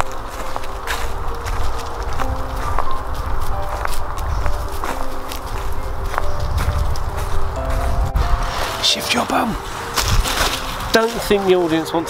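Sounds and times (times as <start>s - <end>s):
footsteps crunching on leaf litter: 0.0s - 12.0s.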